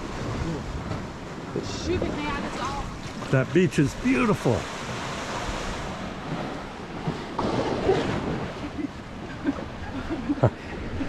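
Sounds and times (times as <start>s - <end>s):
waves washing onto beach: 0.0s - 11.0s.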